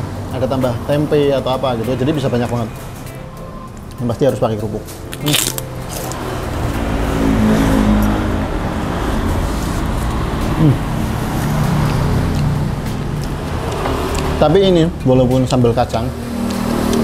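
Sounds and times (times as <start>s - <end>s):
traffic passing close by: 0.0s - 17.0s.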